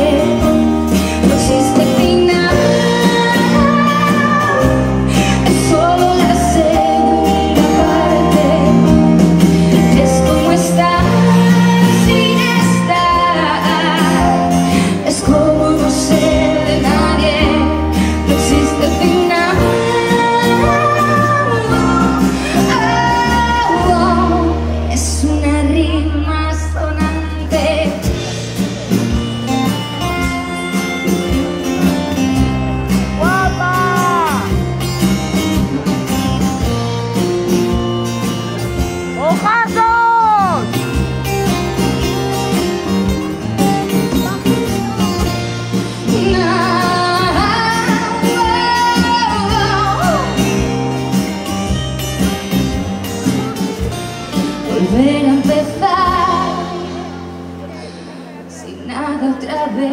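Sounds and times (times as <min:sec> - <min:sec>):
acoustic guitar: 0:00.0 - 0:59.9
bass: 0:00.0 - 0:59.9
drums: 0:00.0 - 0:59.9.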